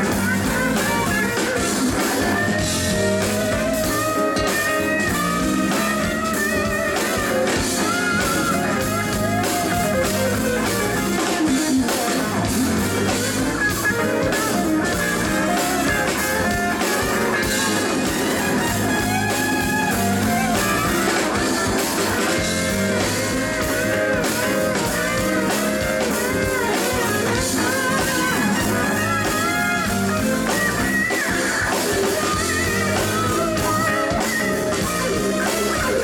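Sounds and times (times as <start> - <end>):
drum kit: 0.0 - 36.0
electric bass: 0.0 - 36.0
electric guitar bending notes: 0.0 - 36.0
live band playing: 0.0 - 36.0.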